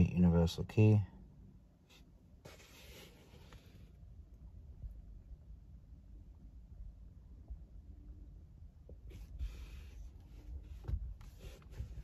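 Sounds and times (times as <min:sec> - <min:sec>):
soft rubbing: 0:01.8 - 0:04.0, 0:09.0 - 0:12.0.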